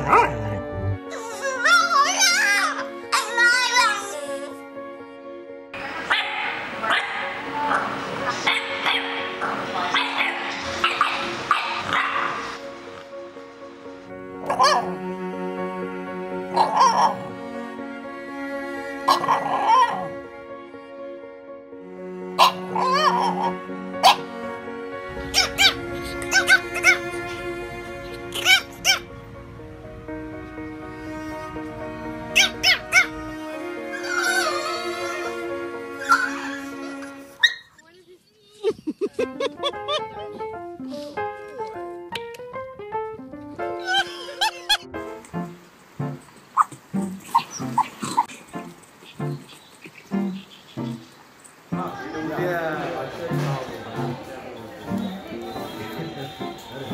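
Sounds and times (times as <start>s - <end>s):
puppy barking and yipping: 0.0s - 0.5s, 1.1s - 4.5s, 6.1s - 12.6s, 14.4s - 15.0s, 16.5s - 17.3s, 19.1s - 20.1s, 22.4s - 24.3s, 25.2s - 27.4s, 28.1s - 29.1s, 32.4s - 33.2s, 33.9s - 35.4s, 36.0s - 37.8s, 43.8s - 44.8s, 46.6s - 51.1s
background music: 0.0s - 37.7s, 38.7s - 56.9s.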